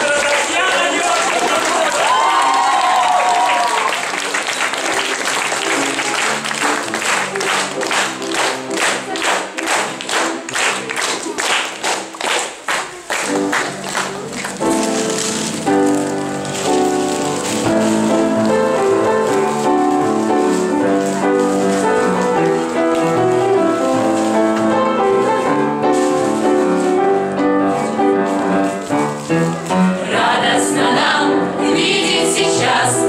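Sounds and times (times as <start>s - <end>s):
applause: 0.0s - 14.6s
music with piano: 0.0s - 33.0s
rhythmic clapping in time: 0.0s - 33.0s.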